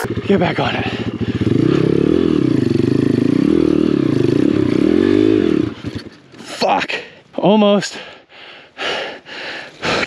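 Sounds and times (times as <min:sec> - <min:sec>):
person breathing hard: 0:00.9 - 0:01.6, 0:08.0 - 0:10.0.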